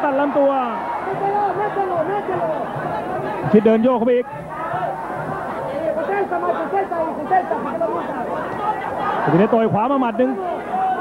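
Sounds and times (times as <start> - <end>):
crowd babble: 0.0 - 11.0.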